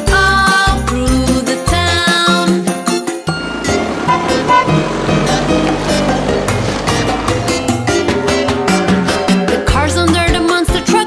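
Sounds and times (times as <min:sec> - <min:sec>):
upbeat background music: 0:00.0 - 0:11.0
cartoon truck engine rumble: 0:03.2 - 0:10.5.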